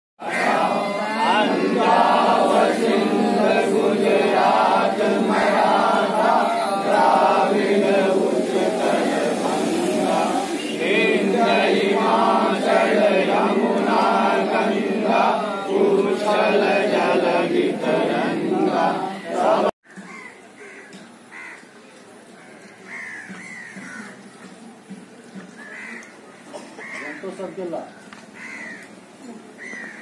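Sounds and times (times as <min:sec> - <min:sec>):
men singing in unison: 0:00.2 - 0:19.7.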